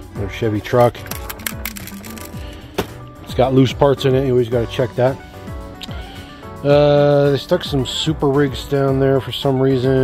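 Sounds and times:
soft background music: 0.0 - 10.0
loose parts rattling: 0.7 - 3.0
toy packaging clicks and rattles: 0.7 - 3.0.

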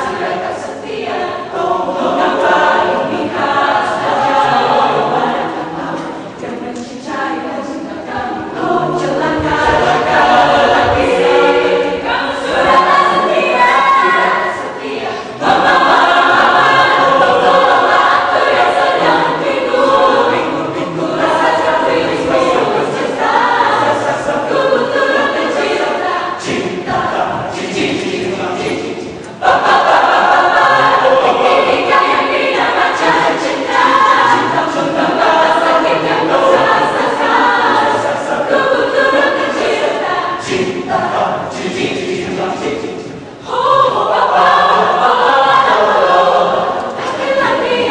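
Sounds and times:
mixed choir singing pop song: 0.0 - 47.9.

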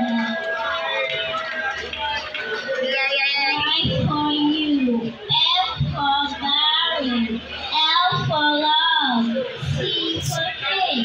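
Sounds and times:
girl singing into microphone: 3.6 - 7.0.

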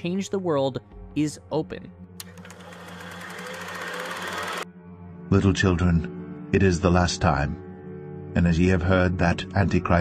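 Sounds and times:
rapid buzzing rattle: 2.2 - 4.6.

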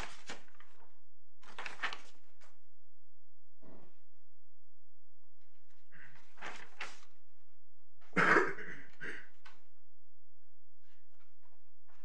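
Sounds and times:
person clearing throat: 8.1 - 9.4.

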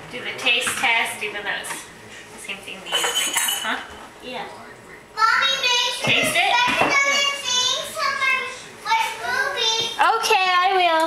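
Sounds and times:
glass jar clinking: 2.9 - 3.8.

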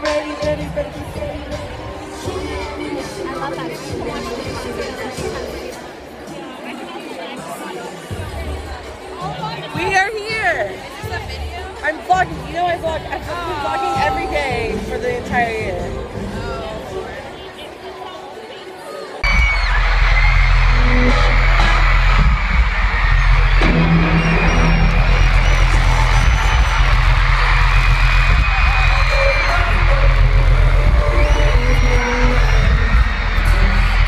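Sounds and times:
loud concert music with heavy bass: 0.0 - 17.9, 19.2 - 34.0
crowd screaming and cheering: 0.0 - 34.0.

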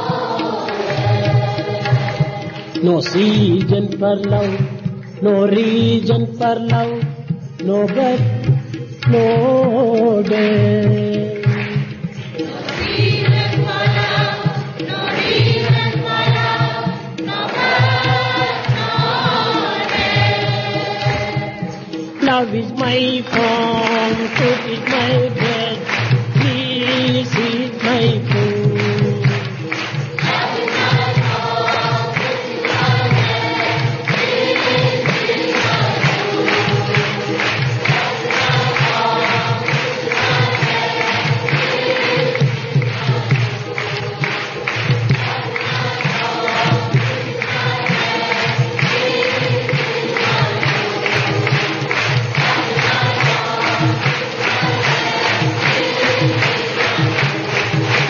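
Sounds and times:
group singing devotional song: 0.0 - 58.0
instrumental accompaniment: 0.0 - 58.0
steady drum beat: 0.0 - 58.0.

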